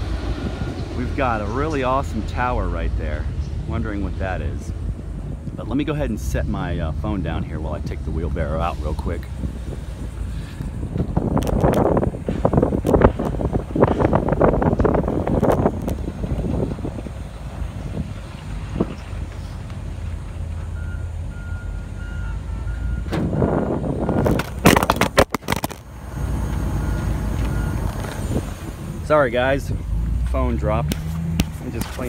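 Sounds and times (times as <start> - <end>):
heavy engine running: 0.0 - 32.0
clattering and scraping: 24.2 - 25.9.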